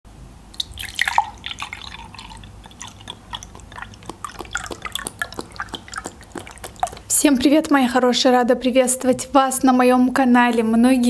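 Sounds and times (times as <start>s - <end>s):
juice pouring into a glass: 0.6s - 7.1s.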